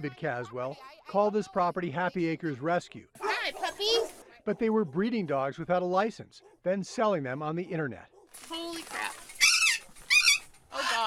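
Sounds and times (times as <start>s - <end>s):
dog yelping: 3.2s - 4.2s, 9.2s - 11.0s.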